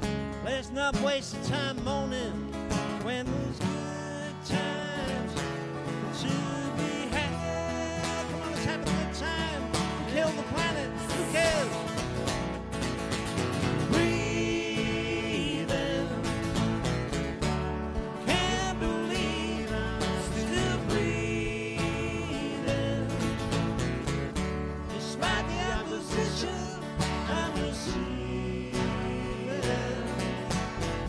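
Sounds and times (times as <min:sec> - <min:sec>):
acoustic guitars strumming: 0:00.0 - 0:31.0
country band playing: 0:00.0 - 0:31.0
person singing: 0:03.0 - 0:12.0, 0:13.8 - 0:16.8, 0:18.1 - 0:23.8, 0:24.8 - 0:31.0.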